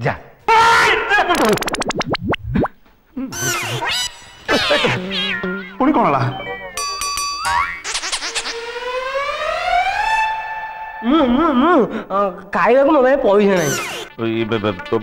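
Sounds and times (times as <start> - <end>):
stepped electronic tones: 1.3 - 2.7
rising pitched tone: 1.3 - 6.8.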